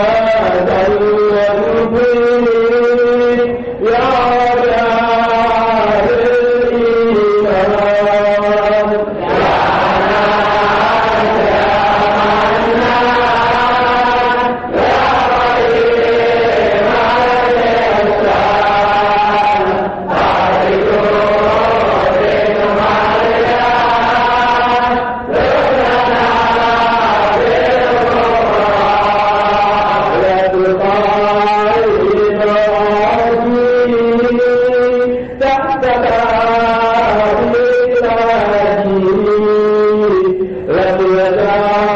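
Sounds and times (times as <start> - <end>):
devotional chanting: 0.0 - 41.9.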